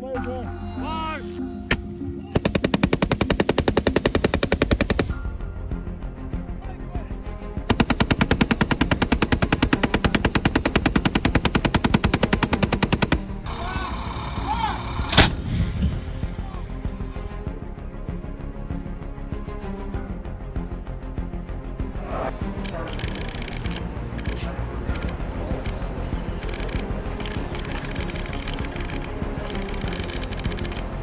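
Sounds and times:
automatic machine-gun fire: 0:02.4 - 0:05.1, 0:07.7 - 0:13.2.

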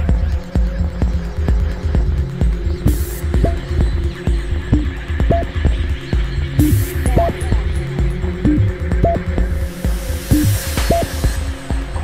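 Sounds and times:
held bass line: 0:02.9 - 0:04.0, 0:06.6 - 0:09.5
pounding kick drum: 0:06.6 - 0:07.7.

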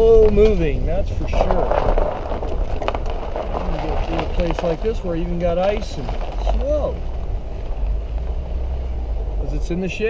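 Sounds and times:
car cabin rumble on rough road: 0:00.0 - 0:10.0.

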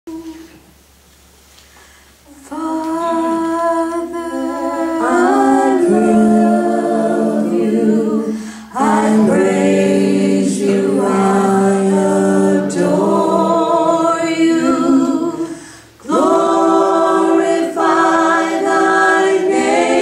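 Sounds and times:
women singing unaccompanied: 0:02.3 - 0:20.0.

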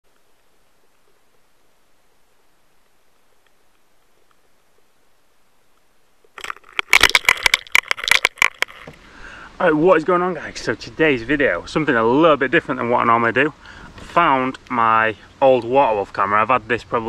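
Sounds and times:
faint underwater hiss: 0:08.8 - 0:17.0.

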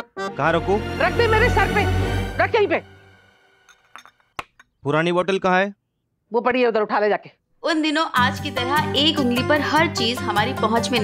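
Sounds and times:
glass bottles clinking: 0:03.7 - 0:04.8.

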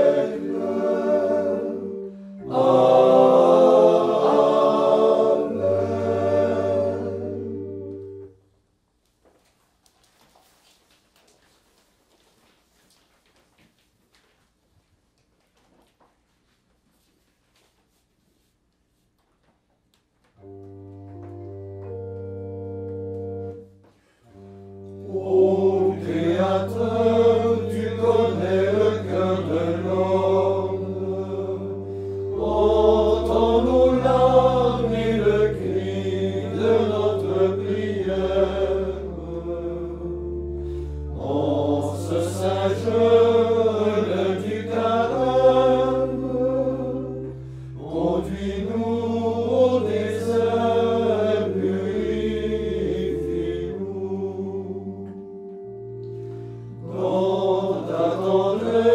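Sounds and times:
men's choir singing a hymn: 0:00.0 - 0:08.3, 0:24.9 - 0:55.4, 0:56.8 - 0:58.9
organ chords: 0:00.0 - 0:08.5, 0:20.4 - 0:58.9.

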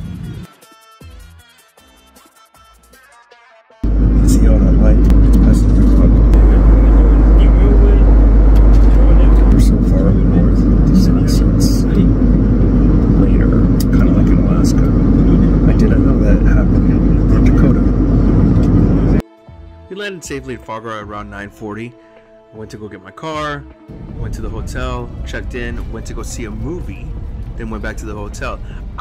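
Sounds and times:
airplane cabin engine rumble: 0:03.8 - 0:19.2, 0:23.9 - 0:29.0
man talking: 0:03.9 - 0:12.3, 0:13.0 - 0:18.0, 0:22.6 - 0:28.8.

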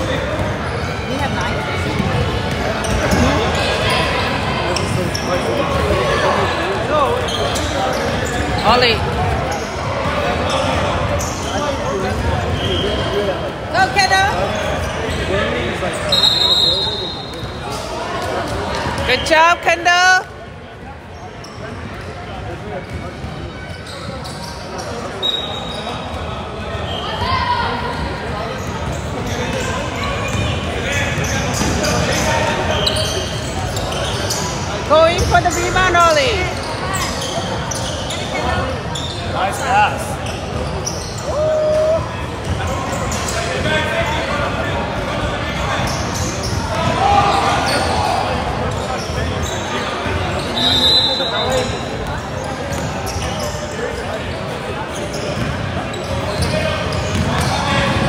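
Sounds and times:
echoing voices of spectators: 0:00.0 - 0:58.0
sneakers squeaking: 0:00.0 - 0:58.0.

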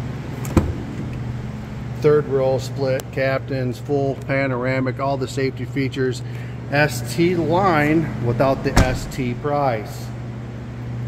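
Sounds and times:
low hum: 0:00.0 - 0:03.2, 0:06.3 - 0:11.0
car door latch click: 0:08.7 - 0:09.3.

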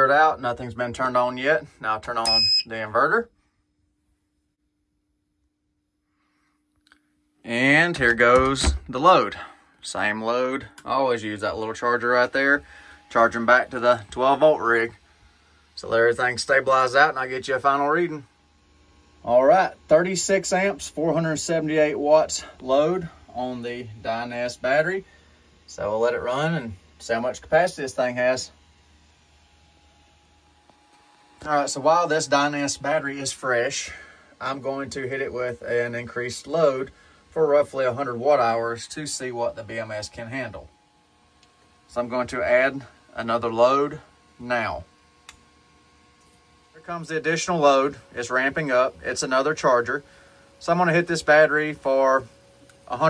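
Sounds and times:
faint steady hum: 0:00.0 - 0:53.0
small click: 0:45.2 - 0:45.5.

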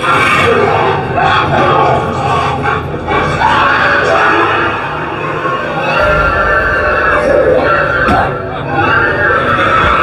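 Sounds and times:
eerie music: 0:00.0 - 0:10.0
eerie sound effects: 0:00.0 - 0:10.0.

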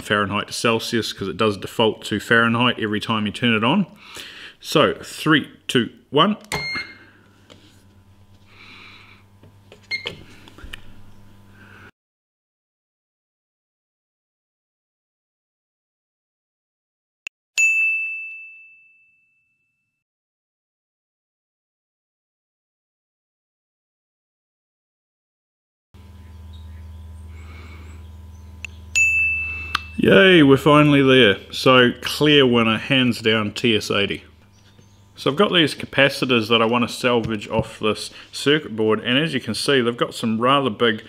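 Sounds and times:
steady low hum: 0:00.0 - 0:11.9, 0:26.0 - 0:41.0
short high beep: 0:06.5 - 0:07.0, 0:29.0 - 0:30.0.

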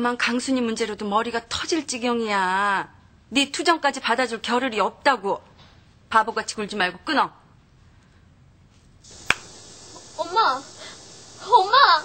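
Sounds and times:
faint hiss: 0:09.0 - 0:12.0.

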